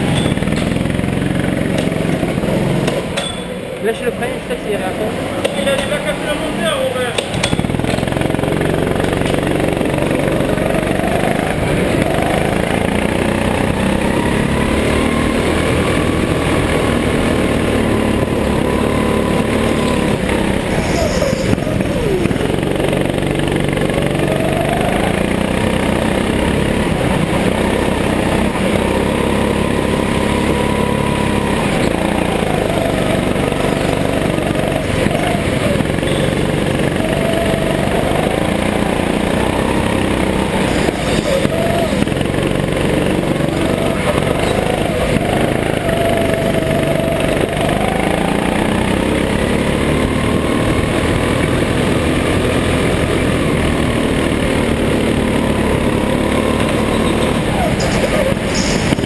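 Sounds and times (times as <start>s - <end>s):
go-kart engine: 0.0s - 59.0s.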